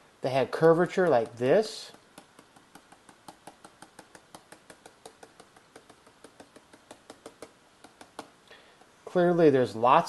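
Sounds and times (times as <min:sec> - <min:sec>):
stylus tapping on a screen: 0:00.6 - 0:08.4.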